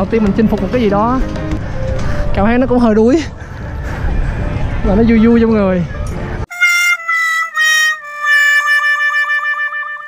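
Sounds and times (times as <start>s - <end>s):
street noise: 0.0s - 10.0s.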